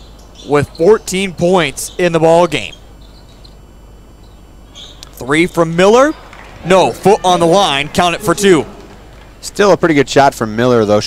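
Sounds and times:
low arena hum: 0.0 - 11.0
sneaker squeaks on court: 1.8 - 5.0.

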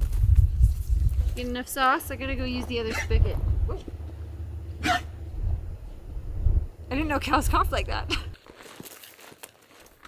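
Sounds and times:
steady low rumble: 0.0 - 8.4
cow coughing: 2.9 - 4.2, 4.8 - 5.2.

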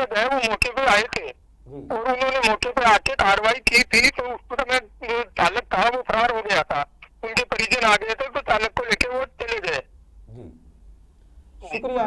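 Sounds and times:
man speaking over phone line: 0.0 - 9.9, 11.6 - 12.0
faint phone line noise: 2.0 - 9.8.

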